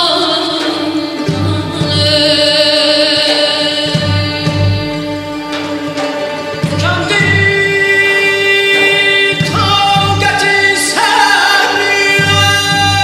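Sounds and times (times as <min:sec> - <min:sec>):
string orchestra: 0:00.0 - 0:13.0.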